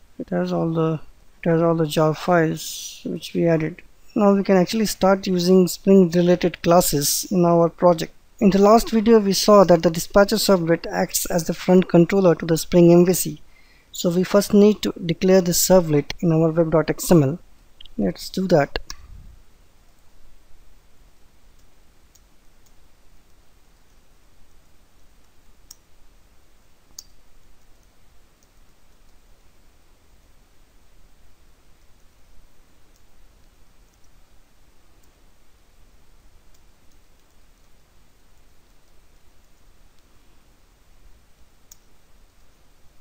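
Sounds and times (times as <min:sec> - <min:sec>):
low background hum: 0:00.0 - 0:43.0
low steady hiss: 0:00.0 - 0:43.0.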